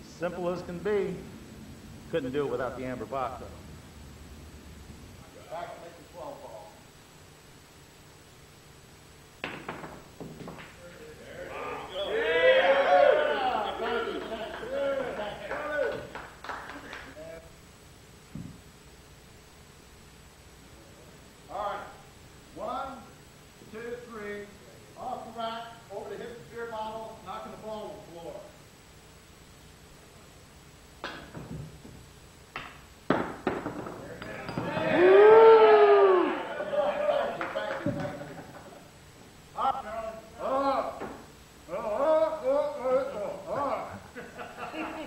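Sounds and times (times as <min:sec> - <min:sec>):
cue striking pool ball: 0:09.4 - 0:10.8, 0:31.0 - 0:35.0
pool balls clicking: 0:09.4 - 0:10.8, 0:31.0 - 0:35.0, 0:37.4 - 0:38.3
long vocal cry: 0:11.5 - 0:15.2, 0:34.8 - 0:36.8
sharp knocks: 0:31.0 - 0:34.9.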